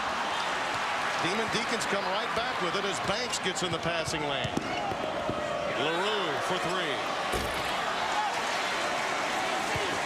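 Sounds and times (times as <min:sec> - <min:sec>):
crowd voices in arena: 0:00.0 - 0:10.0.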